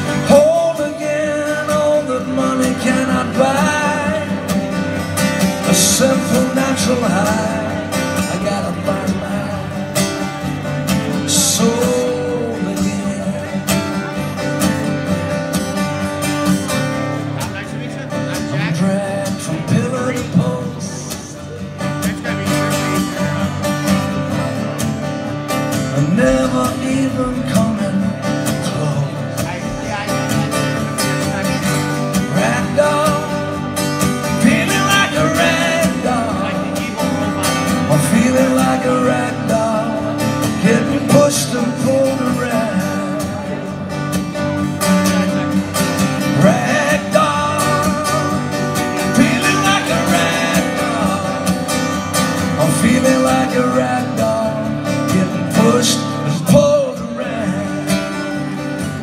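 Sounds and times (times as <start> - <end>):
man singing: 0.0 - 15.0, 17.5 - 24.9, 25.5 - 59.0
acoustic guitar strumming: 0.0 - 59.0.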